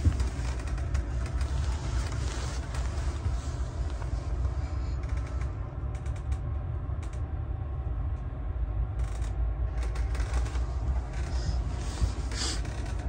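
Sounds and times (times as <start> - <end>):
carriage creaks and clicks: 0.0 - 3.3, 5.0 - 7.2, 9.0 - 11.4, 12.2 - 13.0
train rumble: 0.0 - 13.0.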